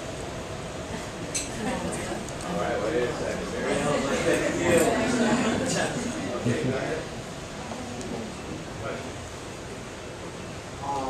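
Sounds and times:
dining room hiss: 0.0s - 11.0s.

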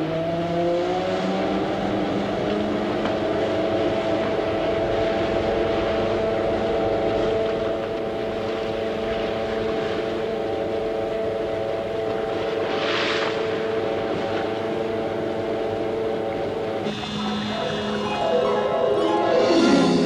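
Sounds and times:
crane winch motor hum: 13.5s - 20.0s.

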